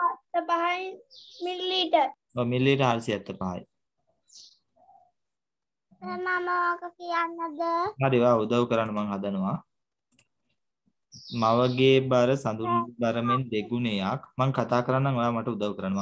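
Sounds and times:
voices talking: 0.0 - 3.8, 6.0 - 9.8, 11.2 - 16.0.

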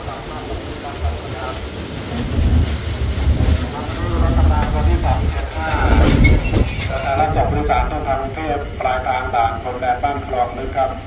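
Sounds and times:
train rumble: 0.0 - 11.0
man speaking: 3.7 - 6.2, 6.8 - 11.0
wheel and brake squeal: 4.3 - 7.2.

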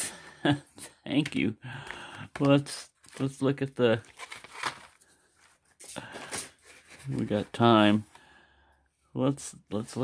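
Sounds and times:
blister packs crinkling: 2.4 - 7.6.

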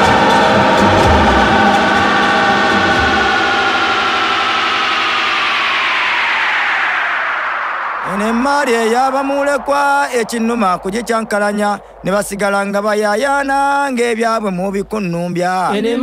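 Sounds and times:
electronic dj mix: 0.0 - 14.9.

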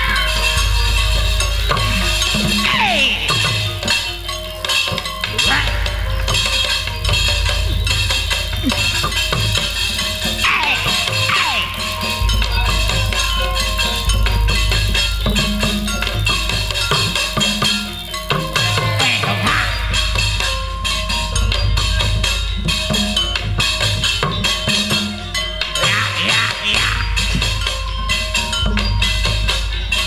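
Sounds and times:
drum strokes sliding down in pitch: 0.0 - 25.1
electronic keyboard lines: 0.0 - 26.9
drum beat and bass: 0.0 - 30.0.

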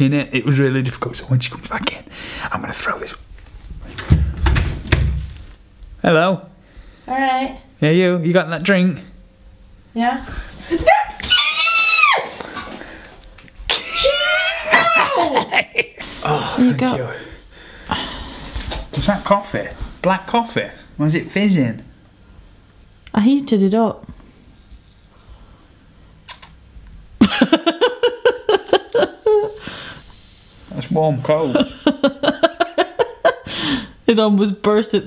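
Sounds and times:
person screaming: 10.8 - 12.4, 13.8 - 15.4
person laughing: 13.7 - 16.6, 27.2 - 29.6, 31.4 - 33.5.

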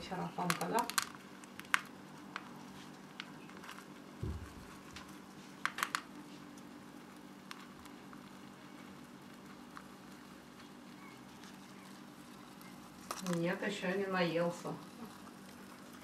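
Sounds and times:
faint steady hum: 0.0 - 16.0
soft low thump: 4.2 - 4.7.

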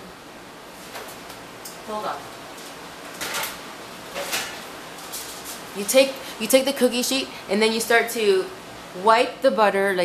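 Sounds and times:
baking sheet scraping and clattering: 3.2 - 5.7.

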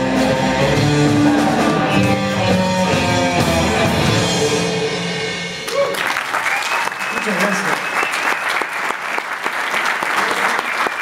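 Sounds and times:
rock band playing: 0.0 - 6.3.

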